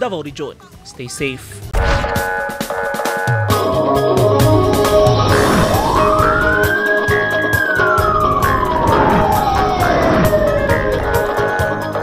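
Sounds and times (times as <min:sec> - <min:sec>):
music with steady beat: 0:02.0 - 0:12.0
siren wail: 0:05.0 - 0:12.0.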